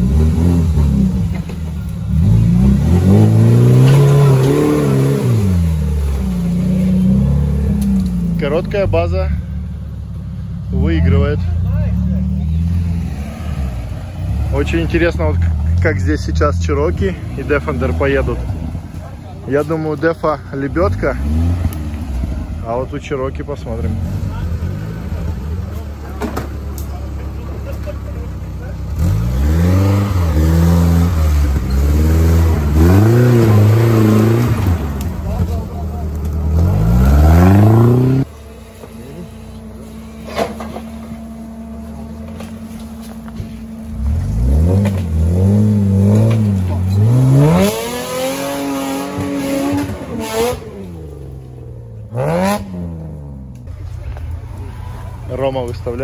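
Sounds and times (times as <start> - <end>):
off-road engine revving: 0.0 - 56.0.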